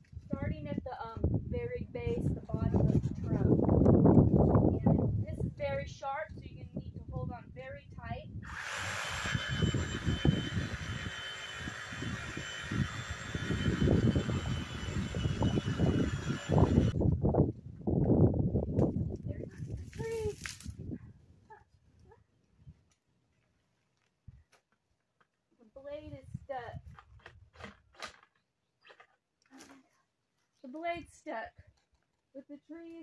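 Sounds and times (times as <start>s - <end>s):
reciprocating saw cutting wood: 8.4s - 17.0s
branches rustling and thumping: 18.0s - 20.8s.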